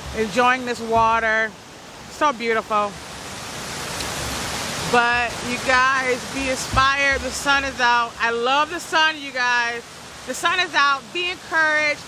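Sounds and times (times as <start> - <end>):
waterfall rushing over stone steps: 0.0 - 12.0.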